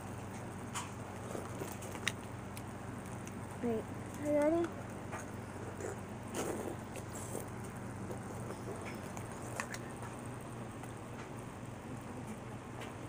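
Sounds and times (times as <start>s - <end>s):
low appliance hum: 0.0s - 13.0s.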